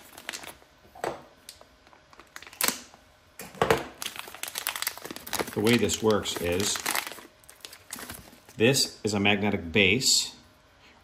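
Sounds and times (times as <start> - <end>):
plastic bag crinkling: 0.0 - 0.7, 1.5 - 3.0, 3.8 - 8.6.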